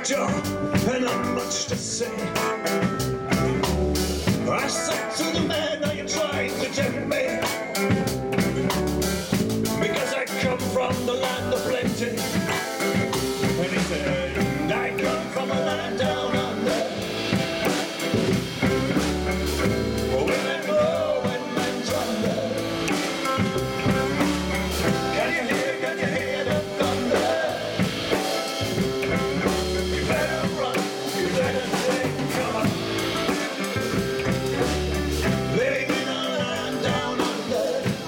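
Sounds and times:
acoustic band playing: 0:00.0 - 0:38.0.

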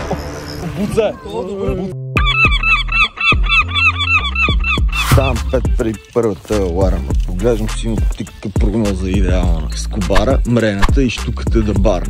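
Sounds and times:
gulls yelping: 0:00.0 - 0:05.8
low bass line music: 0:00.0 - 0:12.0.

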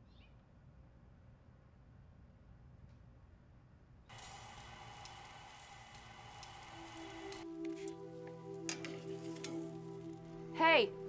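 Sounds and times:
meat sizzling on grill: 0:04.1 - 0:10.3
music with low held notes: 0:06.2 - 0:11.0.

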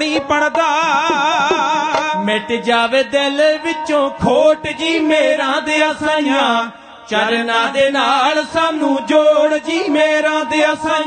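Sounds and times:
male voices singing: 0:00.0 - 0:11.0
sarangi: 0:00.0 - 0:11.0.

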